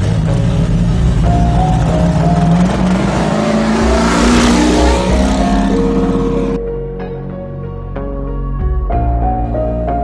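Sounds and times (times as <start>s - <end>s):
music: 0.0s - 10.0s
race vehicle engine passing: 1.8s - 6.6s.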